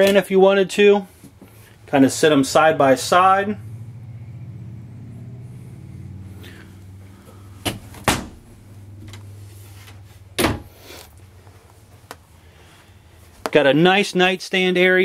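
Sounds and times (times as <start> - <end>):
low steady hum: 1.1 - 13.5.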